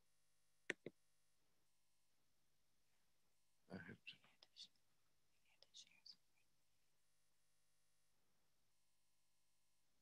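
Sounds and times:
person whispering: 3.7 - 6.5.

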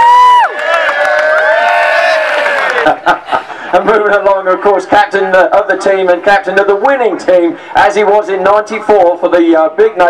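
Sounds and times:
crowd cheering and whooping: 0.0 - 3.4.

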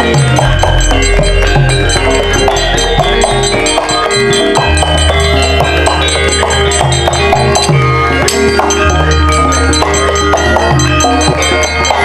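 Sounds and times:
drum beat: 0.0 - 10.0
metallophones ringing: 0.0 - 12.0.

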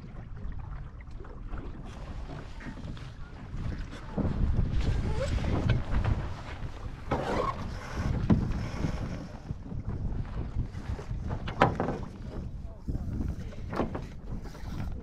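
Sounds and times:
wind buffeting microphone: 0.0 - 15.0
boat fittings knocking: 11.2 - 15.0.

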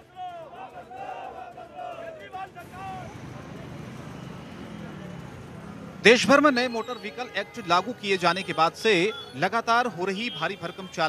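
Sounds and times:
crowd voices: 0.0 - 11.0
road traffic: 0.0 - 11.0.

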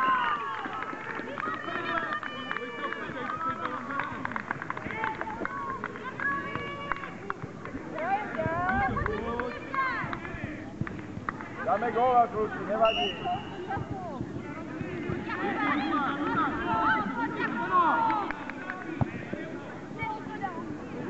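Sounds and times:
spectators chatter: 0.0 - 21.0
children calling and shouting: 13.3 - 21.0.

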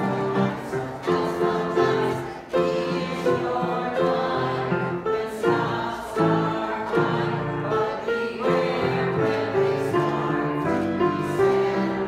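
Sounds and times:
chorus singing: 0.0 - 12.0
grand piano accompaniment: 0.0 - 12.0.

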